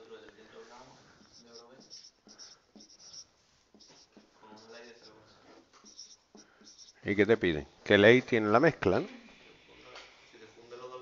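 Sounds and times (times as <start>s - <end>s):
marker writing on whiteboard: 1.1s - 7.6s.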